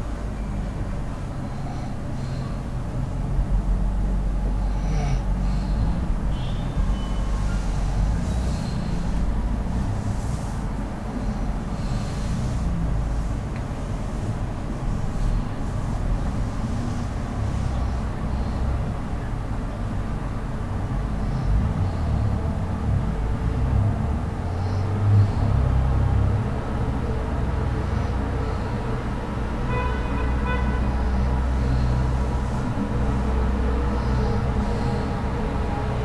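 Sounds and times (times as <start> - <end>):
faint breaths: 0.0 - 36.0
low uneven rumble: 0.0 - 36.0.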